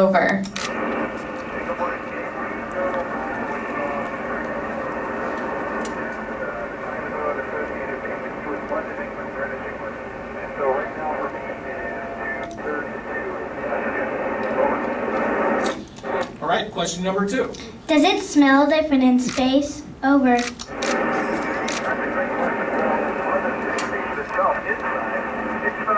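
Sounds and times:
radio hiss: 0.0s - 18.0s, 20.3s - 25.9s
faint voice over radio: 0.7s - 15.7s, 20.8s - 25.9s.

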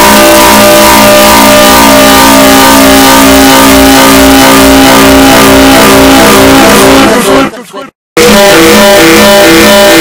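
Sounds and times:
distorted held tones: 0.0s - 7.6s, 8.2s - 10.0s.

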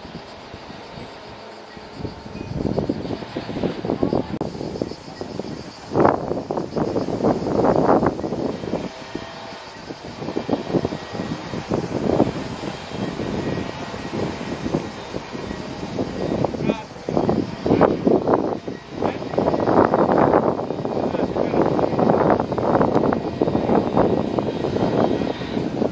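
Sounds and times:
wind on microphone: 0.0s - 25.9s
people talking indistinctly: 16.6s - 17.6s.

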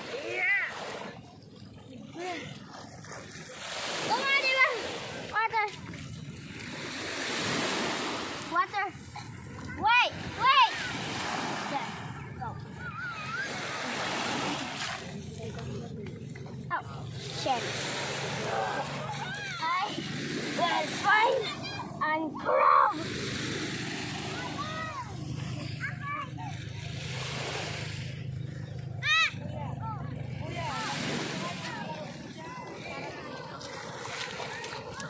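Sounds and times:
small waves washing up beach: 0.0s - 35.0s
children calling and chattering: 3.4s - 6.0s, 7.1s - 35.0s.

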